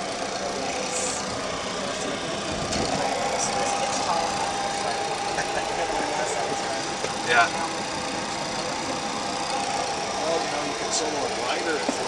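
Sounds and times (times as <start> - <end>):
high whine: 0.0 - 12.0
mechanical hum in cockpit: 0.0 - 12.0.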